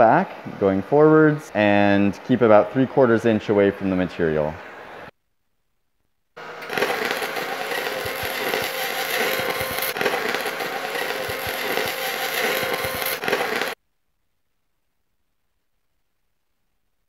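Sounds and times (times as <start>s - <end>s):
welding arc crackling buzz: 6.4s - 13.8s.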